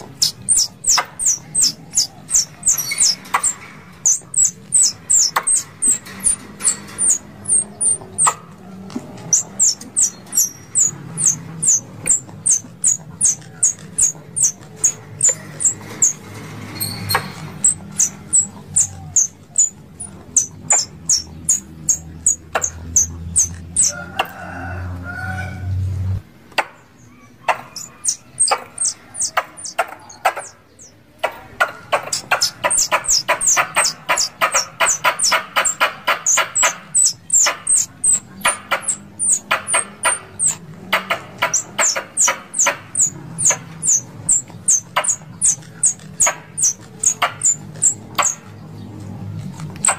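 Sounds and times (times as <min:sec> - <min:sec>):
squirrels calling with sharp chips: 0:00.0 - 0:16.2, 0:16.8 - 0:24.0, 0:26.7 - 0:48.6, 0:49.7 - 0:49.9.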